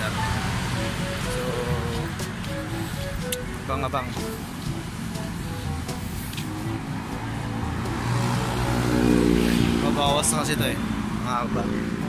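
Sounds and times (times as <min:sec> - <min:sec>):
vehicle engine driving past: 0:06.0 - 0:10.2.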